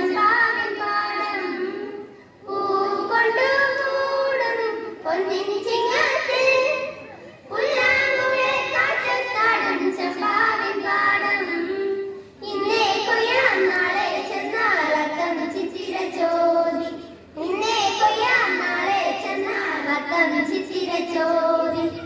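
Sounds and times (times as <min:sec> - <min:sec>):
children singing together: 0:00.0 - 0:22.0.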